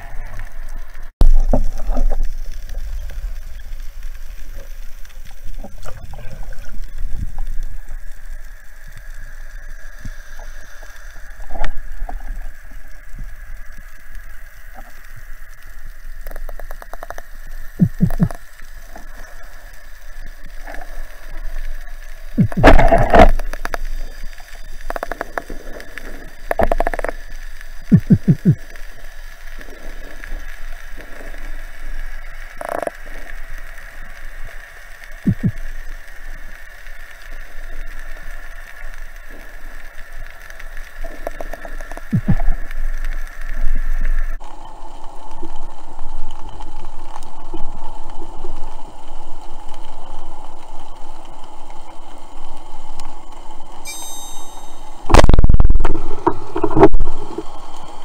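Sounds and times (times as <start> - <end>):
faint steady high tone: 53.8 - 55.6.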